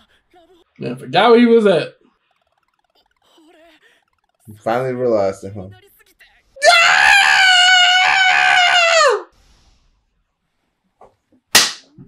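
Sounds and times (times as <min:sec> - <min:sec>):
high-pitched scream: 0:06.6 - 0:09.3
sharp slap: 0:11.5 - 0:11.9.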